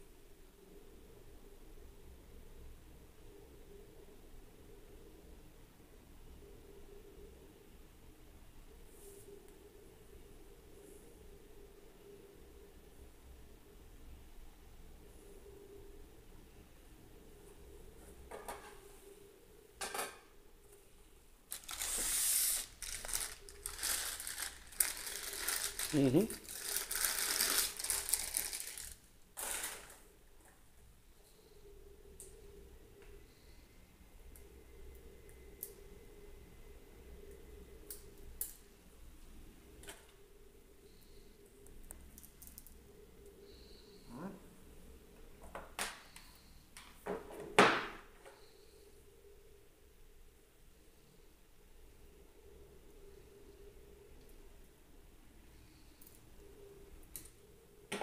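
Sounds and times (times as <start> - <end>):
crinkling handling noise: 21.5 - 30.6.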